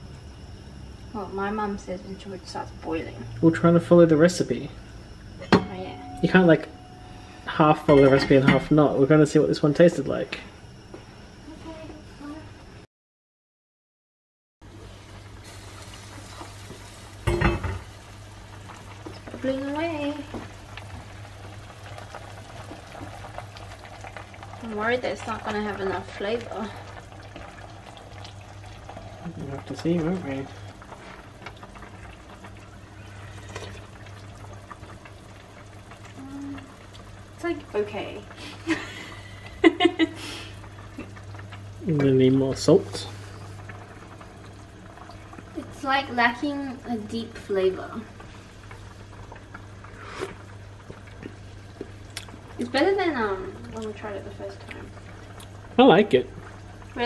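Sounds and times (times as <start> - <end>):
low hum: 0.0 - 12.9
stew bubbling in pot: 14.6 - 57.0.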